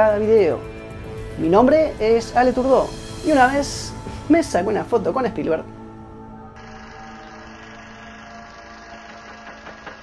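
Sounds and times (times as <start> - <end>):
electrical hum: 5.6 - 9.9.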